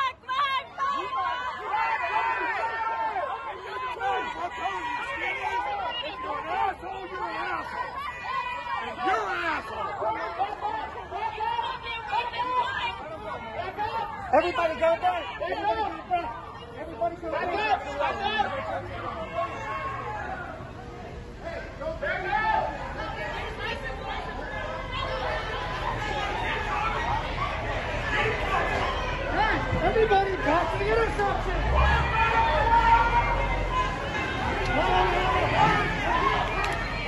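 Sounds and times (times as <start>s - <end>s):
voices arguing and shouting: 0.0s - 37.0s.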